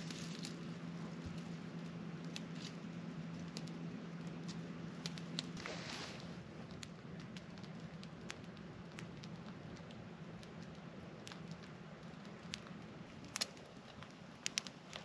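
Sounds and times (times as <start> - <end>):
campfire crackling and popping: 0.0 - 15.0.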